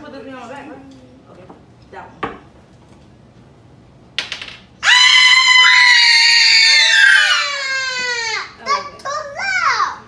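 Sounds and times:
child shrieking: 4.8s - 8.7s.

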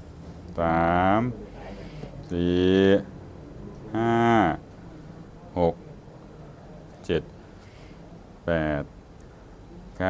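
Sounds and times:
man counting aloud: 0.5s - 5.9s, 8.4s - 9.0s.

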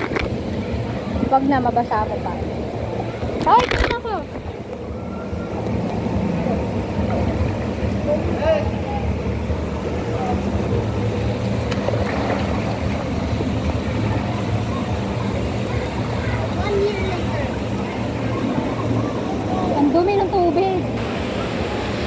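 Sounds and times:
faint voices: 0.0s - 22.0s
low mechanical hum: 0.0s - 22.0s
pool water moving: 0.0s - 22.0s.

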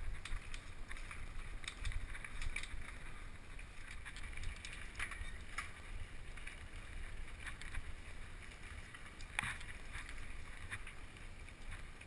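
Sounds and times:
bike tyres rumbling on dirt: 0.0s - 12.0s.

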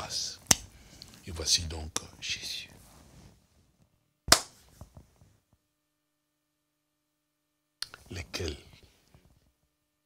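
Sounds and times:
hand clap: 4.3s - 4.6s.

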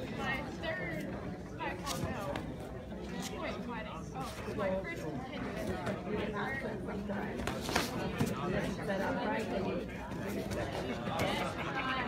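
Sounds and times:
people chattering in a hall: 0.0s - 12.0s.

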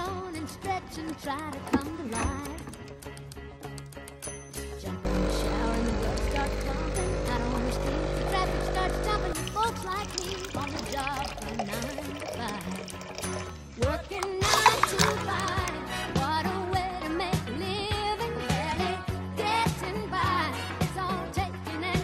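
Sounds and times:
music with singing: 0.0s - 22.0s
espresso machine pump humming: 5.1s - 12.3s
water running into plastic cup: 5.1s - 15.8s.

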